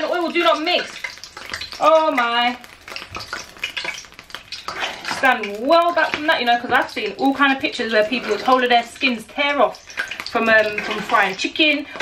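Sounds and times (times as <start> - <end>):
metal spoon scraping saucepan: 4.6 - 12.0.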